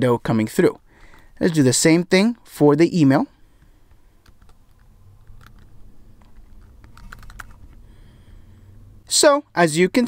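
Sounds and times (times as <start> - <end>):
computer keyboard typing: 4.2 - 5.7, 6.6 - 7.7.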